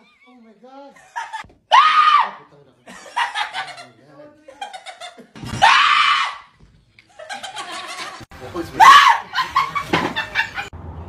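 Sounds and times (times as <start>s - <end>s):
person screaming in fright: 1.7s - 2.4s, 5.6s - 6.5s, 8.8s - 9.3s.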